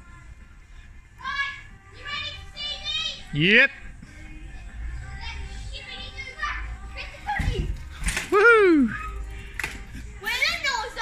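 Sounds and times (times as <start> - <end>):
child whooping: 8.3 - 9.2.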